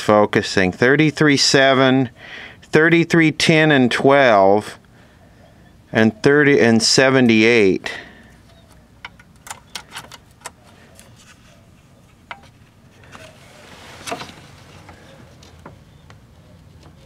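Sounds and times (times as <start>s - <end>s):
handling rustle: 8.4s - 17.0s.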